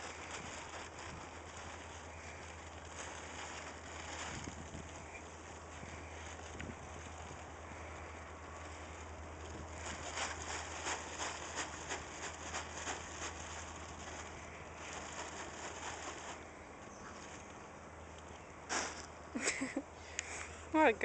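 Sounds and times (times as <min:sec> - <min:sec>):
plastic tarp rustling and crackling: 0:00.0 - 0:19.8.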